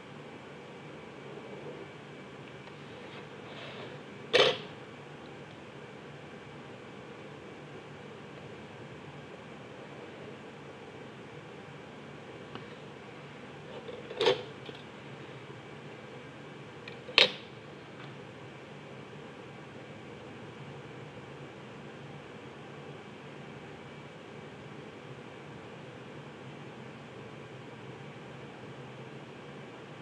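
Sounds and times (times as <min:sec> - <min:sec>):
steady low hiss: 0:00.0 - 0:30.0.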